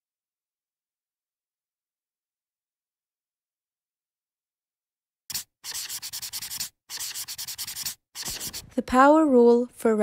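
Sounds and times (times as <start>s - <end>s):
marker scratching on whiteboard: 5.3s - 8.9s.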